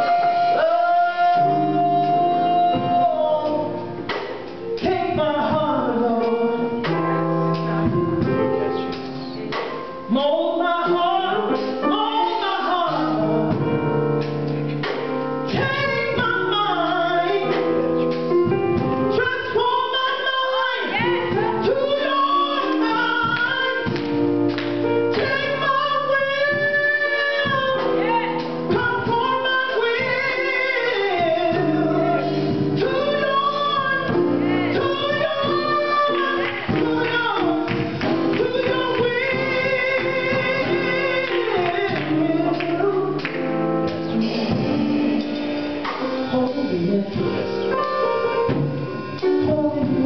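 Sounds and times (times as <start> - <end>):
woman singing gospel: 0.0 - 50.0.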